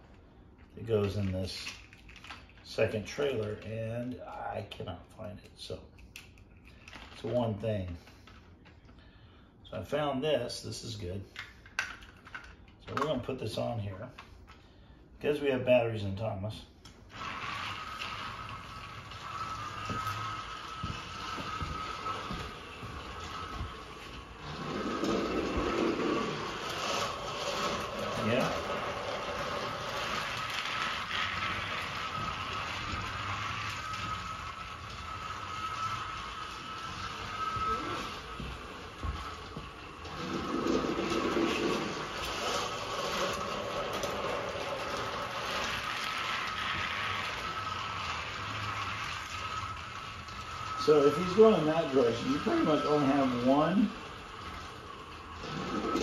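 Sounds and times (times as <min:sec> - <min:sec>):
wheels rattling on plastic rails: 0:00.0 - 0:03.7, 0:06.2 - 0:08.4, 0:11.3 - 0:13.3, 0:17.1 - 0:56.0
toy train motor whine: 0:17.1 - 0:56.0.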